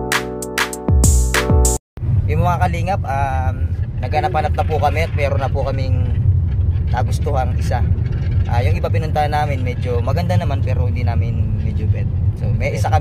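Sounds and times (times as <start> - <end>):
car road and engine rumble: 2.0 - 13.0
man talking: 2.3 - 6.2, 6.9 - 7.9, 8.5 - 13.0.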